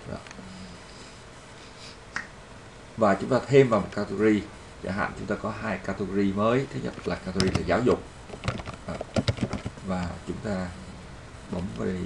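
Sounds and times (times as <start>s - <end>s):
faint room hiss: 0.0s - 12.0s
computer mouse click: 7.4s - 7.7s, 8.3s - 9.8s.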